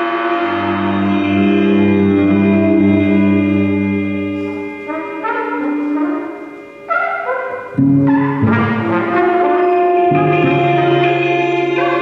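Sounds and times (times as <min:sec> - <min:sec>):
jazz group playing held notes: 0:00.0 - 0:12.0
low drone: 0:00.0 - 0:12.0
trumpet sustaining tones: 0:00.0 - 0:12.0.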